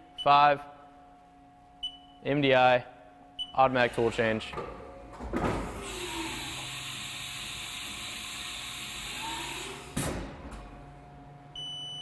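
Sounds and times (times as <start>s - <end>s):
tool changer hiss and whine: 5.4s - 11.6s.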